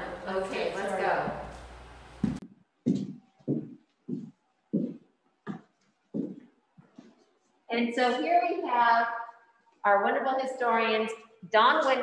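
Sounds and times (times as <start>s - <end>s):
footsteps on hard floor: 2.2s - 7.2s.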